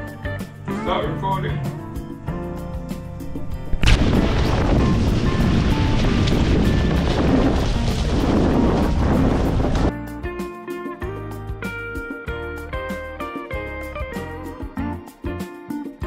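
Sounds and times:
guitar music: 0.0 - 16.0
wind and water rush on microphone: 3.7 - 9.9.

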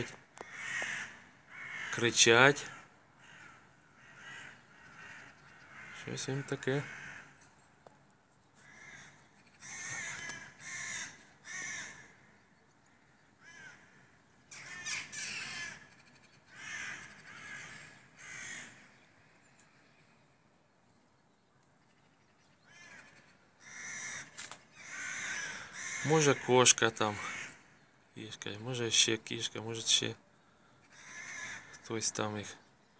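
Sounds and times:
crows cawing: 0.3 - 7.8, 8.6 - 19.4, 21.9 - 28.1, 30.3 - 32.2.

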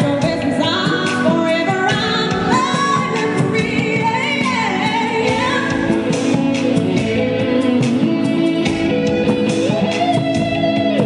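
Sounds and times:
woman singing: 0.0 - 10.1
electric bass: 0.0 - 11.0
live band playing: 0.0 - 11.0.

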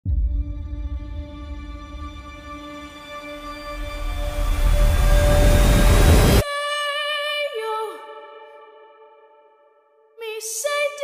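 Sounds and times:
rumbling trailer crescendo: 0.0 - 6.4.

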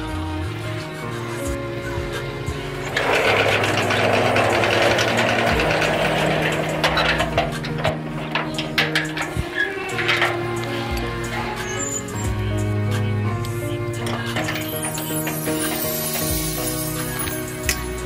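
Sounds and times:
background music: 0.0 - 18.0
metal sliding gate rattling: 2.6 - 12.8, 13.4 - 18.0
sharp clicks and knocks: 2.9 - 11.1, 13.4 - 16.4.

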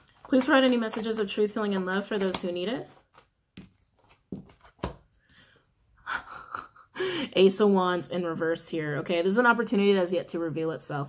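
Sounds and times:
woman breathing: 5.2 - 6.3, 6.9 - 7.4.

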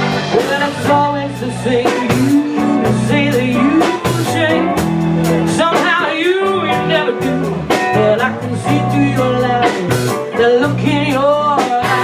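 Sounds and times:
woman singing: 0.0 - 4.9, 5.5 - 12.0
blues band playing: 0.0 - 12.0.

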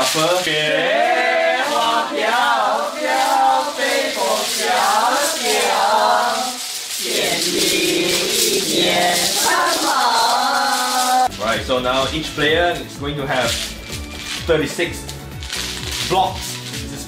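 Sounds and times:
mahjong tiles clattering: 0.0 - 11.4, 13.4 - 17.0
background music with singing: 0.0 - 17.0.

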